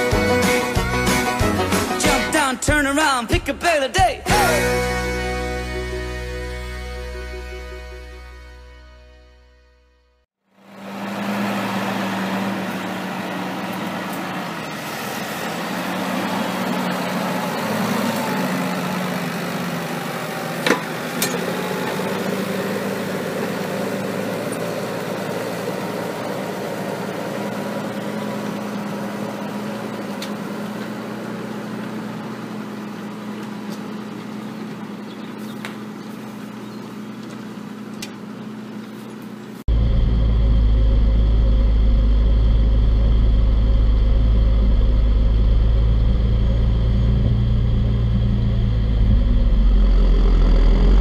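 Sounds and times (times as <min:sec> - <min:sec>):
tractor diesel engine running: 0:00.0 - 0:08.7, 0:10.4 - 0:51.0.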